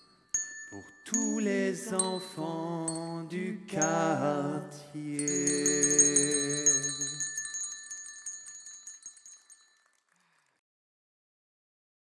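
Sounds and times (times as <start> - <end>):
handbells ringing: 0.0 - 4.1, 5.2 - 10.1.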